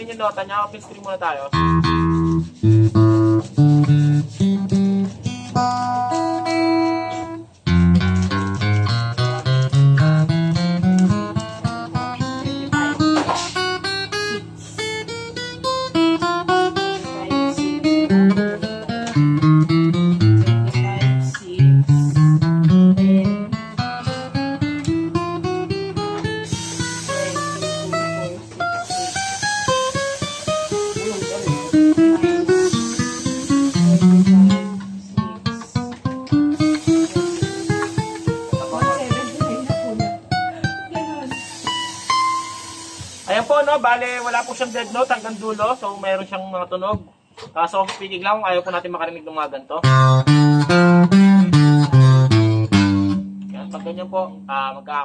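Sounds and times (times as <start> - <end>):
acoustic guitar single notes: 1.5 - 43.4, 49.8 - 55.0.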